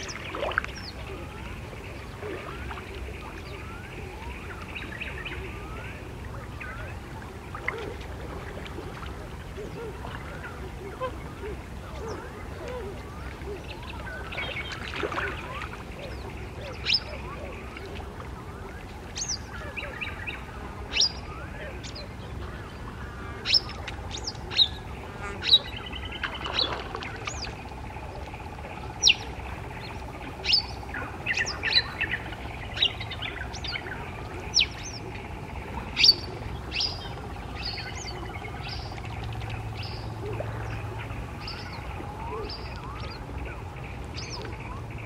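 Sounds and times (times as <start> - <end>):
birds chirping: 0.0 - 45.0
steady low hum: 0.0 - 45.0.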